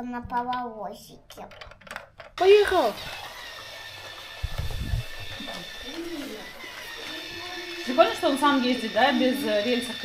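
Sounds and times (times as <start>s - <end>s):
toy train motor whining: 2.4s - 10.0s.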